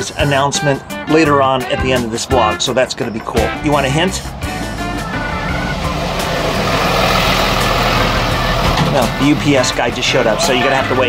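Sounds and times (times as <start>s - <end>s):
truck engine running: 2.8s - 11.0s.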